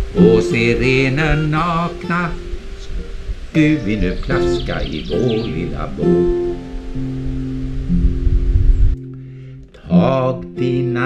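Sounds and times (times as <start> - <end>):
person singing: 0.0 - 6.9, 9.3 - 11.0
acoustic guitar playing: 0.0 - 11.0
low rumble: 7.2 - 9.0.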